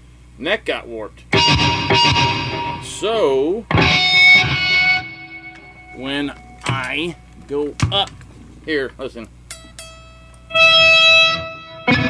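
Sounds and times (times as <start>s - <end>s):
electric guitar strings ringing: 1.4s - 8.2s, 9.4s - 12.0s.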